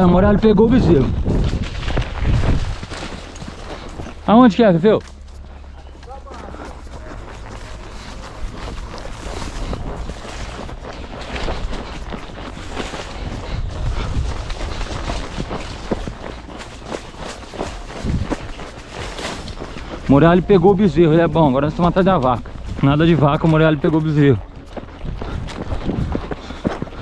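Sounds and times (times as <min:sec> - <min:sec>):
wind rumble on microphone: 0:00.0 - 0:04.3, 0:06.8 - 0:23.4, 0:24.3 - 0:27.0
horse hooves on dirt: 0:00.0 - 0:27.0
brush scraping: 0:05.1 - 0:20.4.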